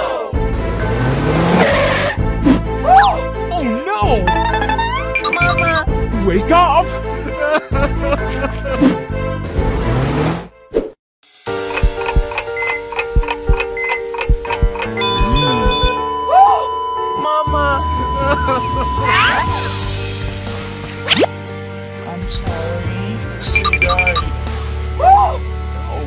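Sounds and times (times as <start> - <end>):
background music: 0.0 - 26.0
car engine revving: 0.5 - 2.6, 9.4 - 10.5
clock ticking: 11.7 - 16.0, 23.6 - 24.3.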